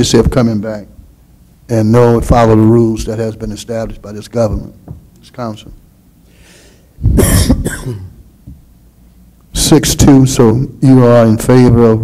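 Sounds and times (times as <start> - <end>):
person coughing: 7.1 - 8.2.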